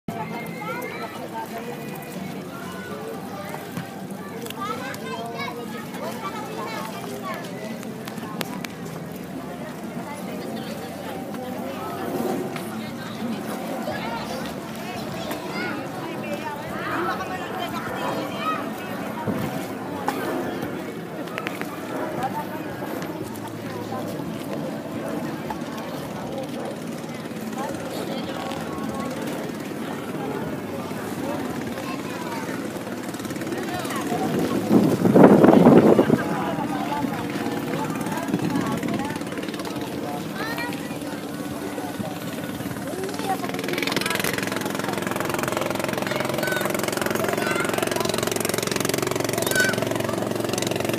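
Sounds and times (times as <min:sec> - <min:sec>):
people talking: 0:00.0 - 0:50.9
boat engine droning: 0:00.1 - 0:50.9.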